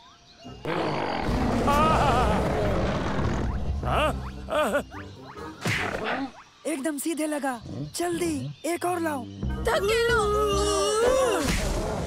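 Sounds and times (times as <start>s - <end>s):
cartoon gorilla roar: 0.6s - 4.8s
background music: 3.5s - 6.4s, 7.7s - 11.5s.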